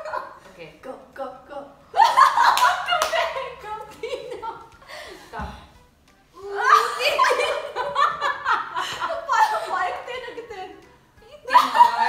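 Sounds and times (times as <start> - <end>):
people laughing: 2.0 - 5.5, 6.5 - 12.0
hand claps: 2.5 - 3.4.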